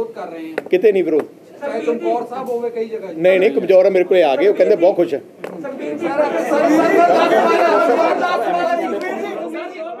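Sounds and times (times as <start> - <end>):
chatter in reverberant room: 0.0 - 10.0.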